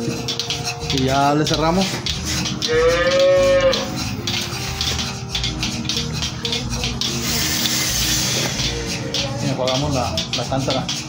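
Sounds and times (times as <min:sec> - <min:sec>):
background music: 0:00.0 - 0:11.0
cow mooing: 0:02.7 - 0:04.0
short hiss: 0:07.2 - 0:08.8.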